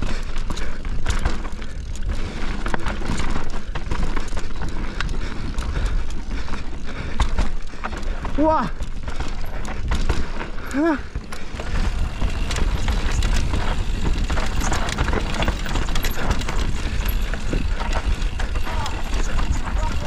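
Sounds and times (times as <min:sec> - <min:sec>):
bike chain and frame rattling: 0:00.0 - 0:20.0
tyres on loose dirt: 0:00.0 - 0:20.0
wind rumble on microphone: 0:11.5 - 0:20.0.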